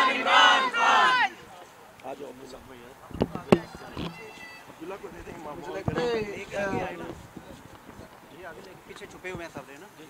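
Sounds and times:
people talking: 1.1 - 10.0.

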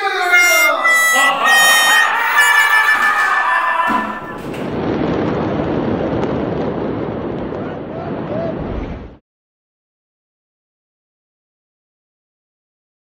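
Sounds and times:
high reedy pitched tone: 0.0 - 4.5
explosion rushing rumble: 4.4 - 9.2.

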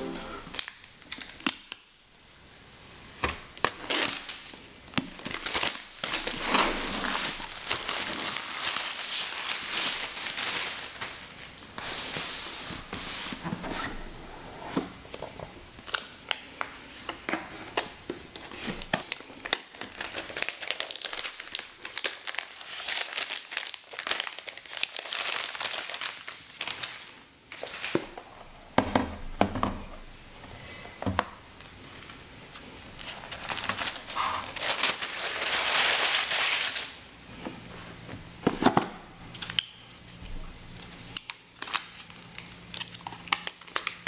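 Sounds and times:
plastic wrap crinkling: 0.5 - 2.0, 3.5 - 11.8, 15.8 - 28.2, 31.6 - 37.0, 39.3 - 44.0.

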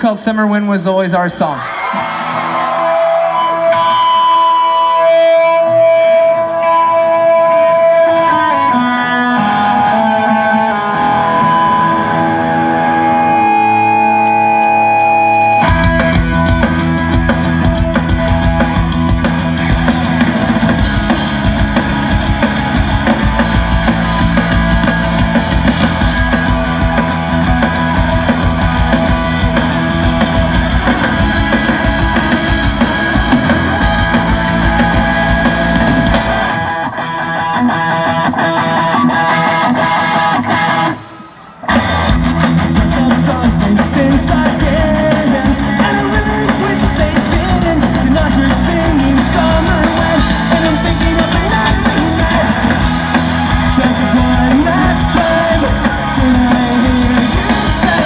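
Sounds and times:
drums: 0.0 - 58.0
rock band playing live: 0.0 - 58.0
electric guitar: 1.6 - 58.0
bass guitar: 1.8 - 58.0.

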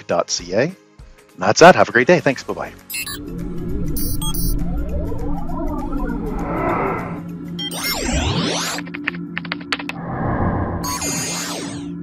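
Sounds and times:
whoosh: 3.0 - 7.4, 10.0 - 11.1
low electronic hum: 3.0 - 8.4.

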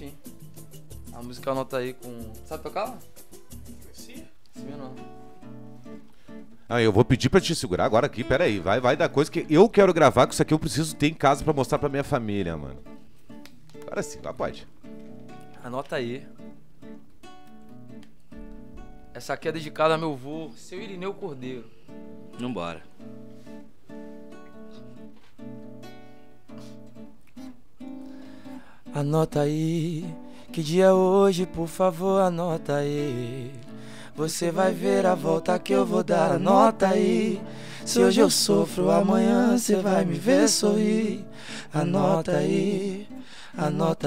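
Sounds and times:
acoustic guitar strumming chords: 0.0 - 19.8, 21.8 - 44.0.

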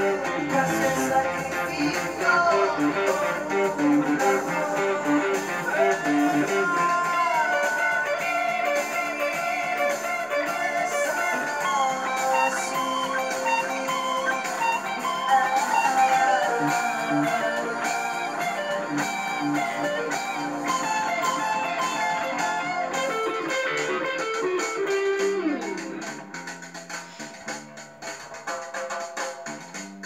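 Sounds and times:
electric guitar lead line: 0.0 - 30.0.

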